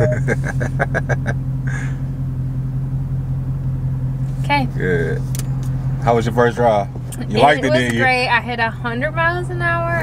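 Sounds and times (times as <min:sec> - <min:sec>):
laughter: 0:00.0 - 0:01.9
car engine idling hum: 0:00.0 - 0:10.0.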